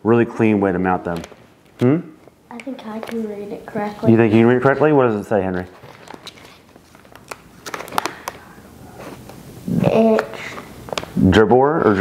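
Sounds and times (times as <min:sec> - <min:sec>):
plastic packaging crinkling: 0:02.5 - 0:04.3, 0:05.4 - 0:09.4, 0:10.1 - 0:11.2.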